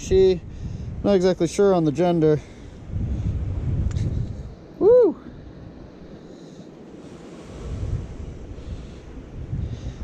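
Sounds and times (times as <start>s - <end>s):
surf on rocks: 0.0s - 10.0s
wind gusting on microphone: 0.0s - 10.0s.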